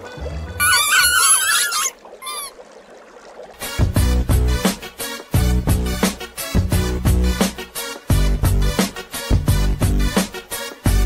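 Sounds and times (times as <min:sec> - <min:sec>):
rubber toys squeaking: 0:00.6 - 0:02.6.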